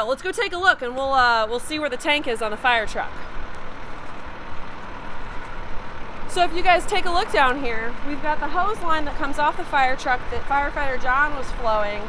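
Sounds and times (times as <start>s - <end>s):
fire engine running: 0.0s - 12.0s.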